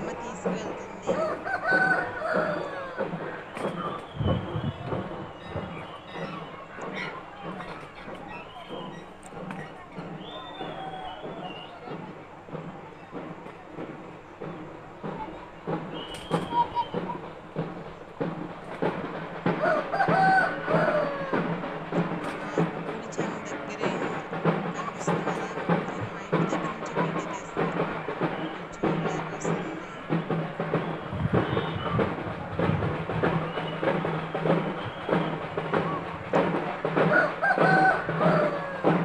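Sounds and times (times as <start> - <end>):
drum beats: 0.0 - 39.0
rooster crowing: 1.0 - 3.2, 19.6 - 21.6, 37.0 - 39.0.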